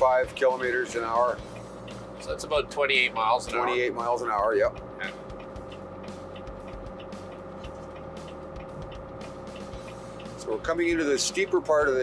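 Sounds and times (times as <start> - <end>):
truck diesel engine droning: 0.0 - 12.0.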